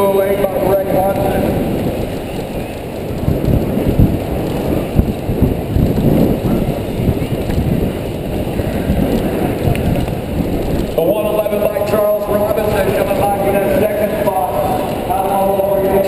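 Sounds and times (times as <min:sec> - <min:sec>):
bike tyres rolling on dirt: 0:00.0 - 0:16.0
wind buffeting microphone: 0:00.0 - 0:16.0.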